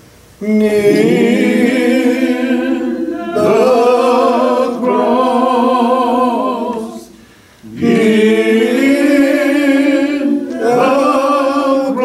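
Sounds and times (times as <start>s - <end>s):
man singing a hymn unaccompanied: 0.4s - 2.3s, 3.1s - 12.0s.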